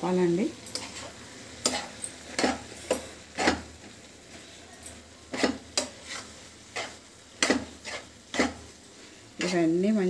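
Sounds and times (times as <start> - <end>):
vegetables sizzling: 0.0 - 10.0
spoon scraping frying pan: 0.5 - 9.8.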